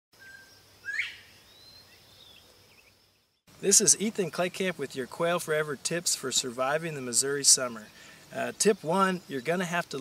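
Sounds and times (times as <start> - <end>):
bobwhite whistled call: 0.2 - 1.8.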